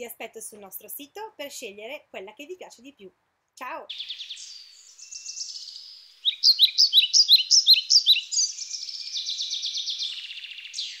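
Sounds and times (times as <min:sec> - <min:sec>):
songbird singing trills: 0:03.9 - 0:11.0.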